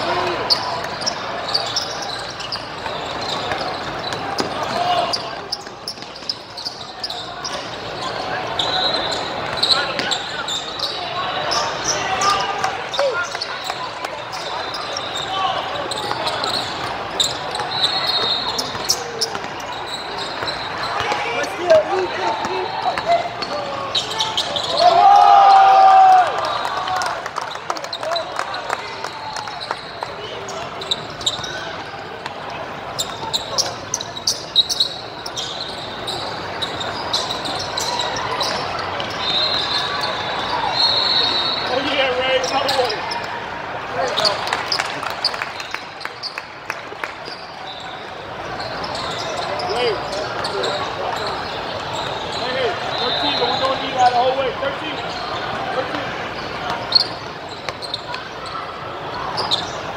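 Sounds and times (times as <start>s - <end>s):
sneakers squeaking: 0.0s - 59.9s
voices of players: 0.0s - 59.9s
basketballs bouncing on court: 0.1s - 7.2s, 15.9s - 23.6s.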